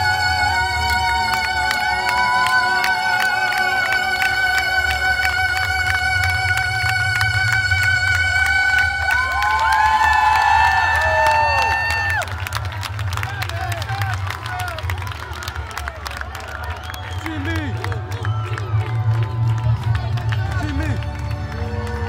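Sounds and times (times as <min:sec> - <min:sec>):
crowd cheering and clapping: 0:00.0 - 0:22.0.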